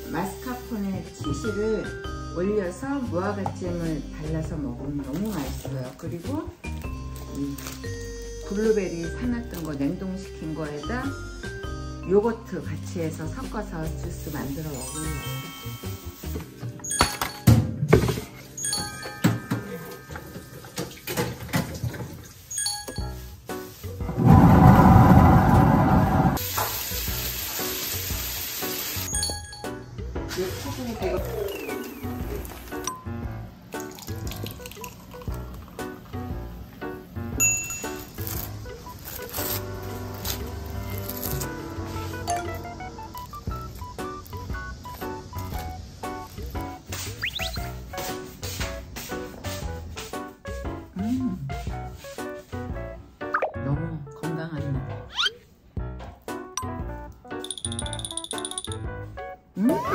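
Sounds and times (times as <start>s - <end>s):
background music: 0.0s - 21.5s, 22.2s - 59.9s.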